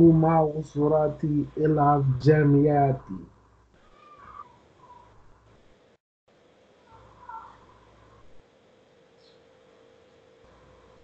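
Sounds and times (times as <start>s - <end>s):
man speaking: 0.0s - 3.3s
high-pitched animal calls: 3.9s - 5.2s, 6.9s - 7.7s.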